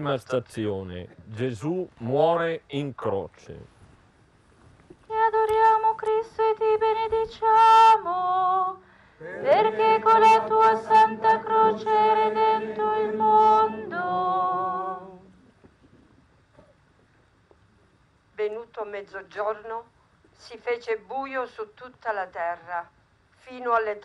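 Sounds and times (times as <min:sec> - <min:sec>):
woman singing a chant: 0:05.1 - 0:15.2.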